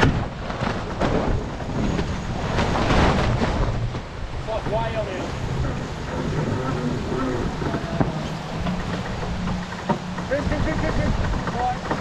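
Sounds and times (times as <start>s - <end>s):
rushing and splashing water: 0.0s - 12.0s
wind buffeting microphone: 0.0s - 12.0s.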